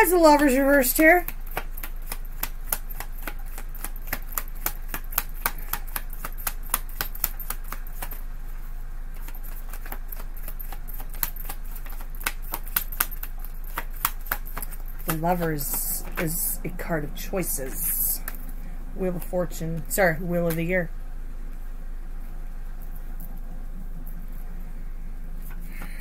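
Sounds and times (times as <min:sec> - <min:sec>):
faint low hum: 0:00.0 - 0:26.0
cards being shuffled: 0:01.2 - 0:16.6.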